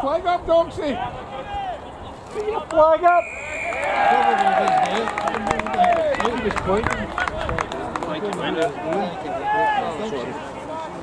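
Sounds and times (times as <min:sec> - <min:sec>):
players shouting: 0:00.9 - 0:11.0
referee's whistle blast: 0:03.2 - 0:04.2.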